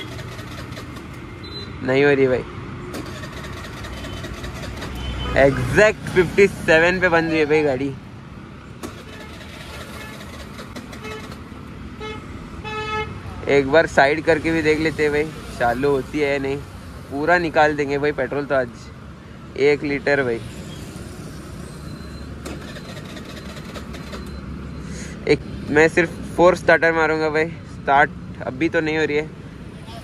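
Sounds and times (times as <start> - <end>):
scooter electric starter cranking: 0.0 - 1.4, 2.9 - 5.2, 8.8 - 11.7, 22.2 - 24.4
road traffic: 0.0 - 30.0
faint vehicle horn toot: 5.0 - 5.6.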